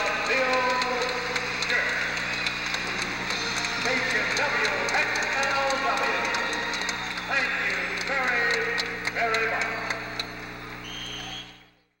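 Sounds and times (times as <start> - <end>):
music: 0.0 - 10.7
electrical hum: 0.0 - 12.0.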